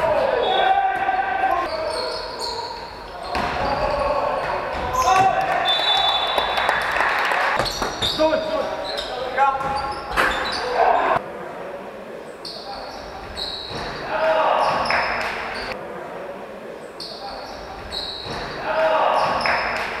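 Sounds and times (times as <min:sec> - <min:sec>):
basketball and court noise: 0:00.0 - 0:20.0
players' voices echoing: 0:00.0 - 0:20.0.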